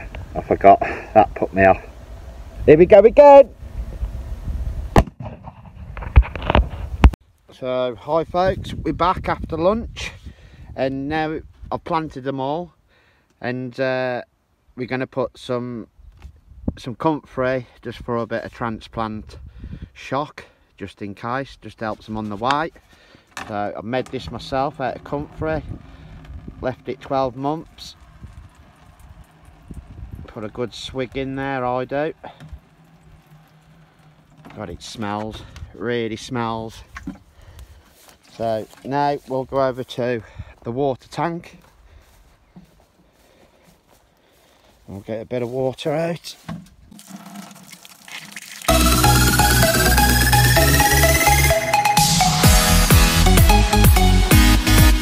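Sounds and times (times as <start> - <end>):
low rumble: 23.9 - 35.8
liquid glugging and splashing: 46.8 - 48.7.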